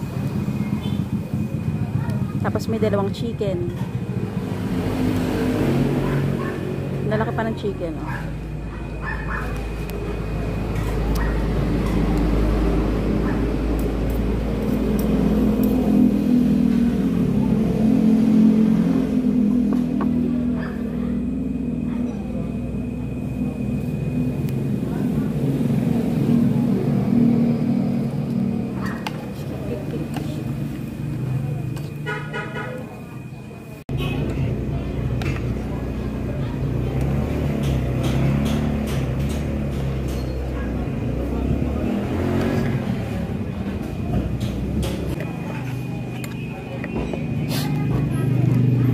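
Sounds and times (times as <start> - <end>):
vehicle engine and traffic: 0.0 - 48.9
voices: 0.0 - 48.9.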